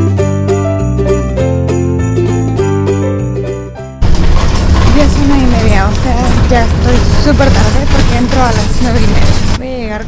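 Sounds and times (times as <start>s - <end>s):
bus engine and road rumble: 4.0s - 10.0s
person talking: 4.9s - 10.0s.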